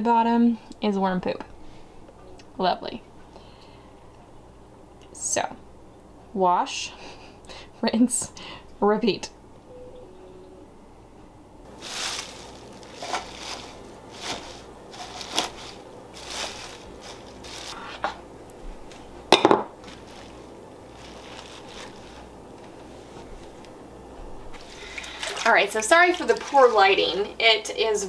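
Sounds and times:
leaves rustling: 11.7s - 17.8s, 19.8s - 23.7s.

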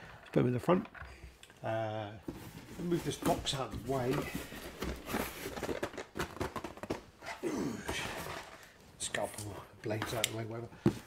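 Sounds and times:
cardboard boxes being handled: 2.2s - 7.1s.

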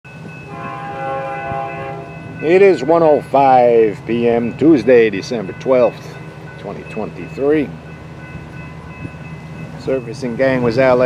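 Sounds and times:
distant locomotive horn: 0.2s - 3.3s.

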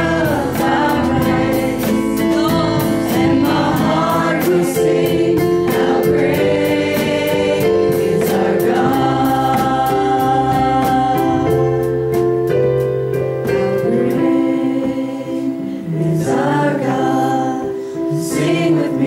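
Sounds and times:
group singing gospel song: 0.0s - 12.2s, 13.4s - 19.0s
backing music with steady beat: 0.0s - 19.0s.

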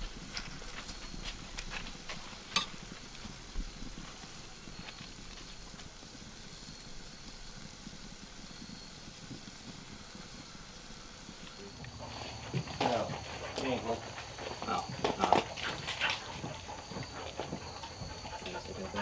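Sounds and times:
food sizzling in a pan: 0.0s - 13.2s.

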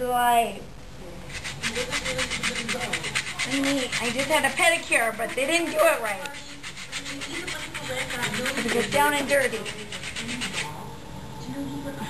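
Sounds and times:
sandpaper scraping skin: 1.3s - 10.8s.

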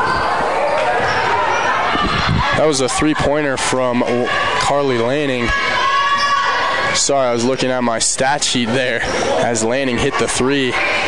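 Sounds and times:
voices in gymnasium: 0.0s - 11.0s.

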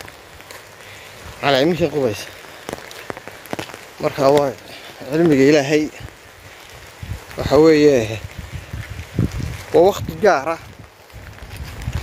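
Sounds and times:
drops ticking on umbrella: 0.0s - 12.0s
rain hissing on an umbrella: 0.0s - 12.0s.

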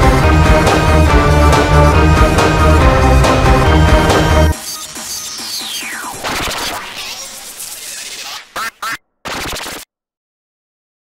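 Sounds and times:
distorted chopped sound effects: 4.5s - 9.9s.

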